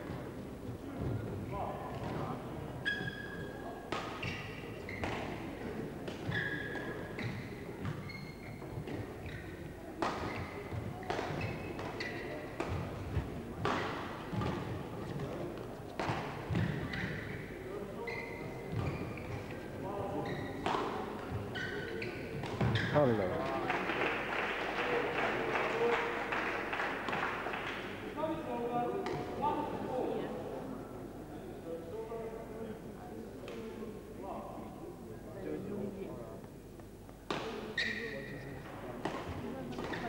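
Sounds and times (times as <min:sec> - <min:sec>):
shoes squeaking on floor: 0:02.8 - 0:05.5, 0:06.2 - 0:12.8, 0:16.0 - 0:23.2, 0:37.4 - 0:38.6
crowd talking: 0:17.4 - 0:40.0
crowd clapping: 0:23.3 - 0:28.0.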